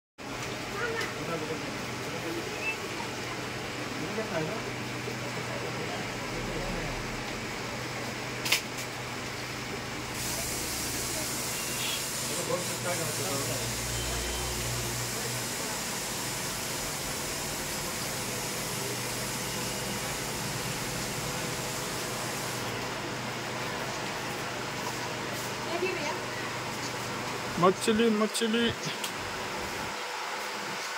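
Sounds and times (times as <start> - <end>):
aquarium water hissing: 10.0 - 26.0.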